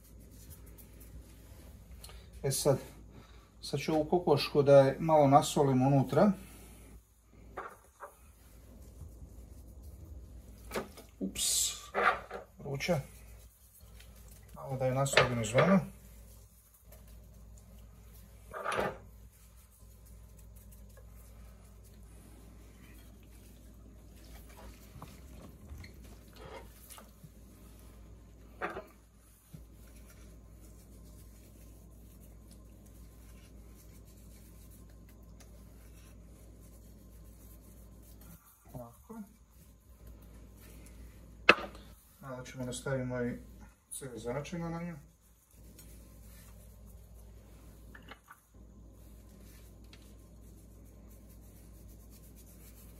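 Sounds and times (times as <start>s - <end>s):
gloved hands rubbing chicken skin: 0.0s - 52.9s
steady low hum: 0.0s - 52.9s.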